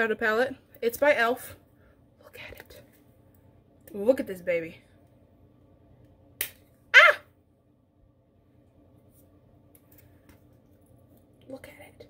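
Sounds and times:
woman exclaiming: 7.0s - 7.3s.

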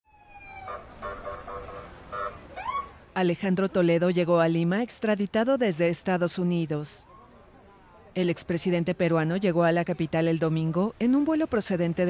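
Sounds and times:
police siren: 0.1s - 3.0s
vehicle engines rumbling: 0.1s - 12.0s.

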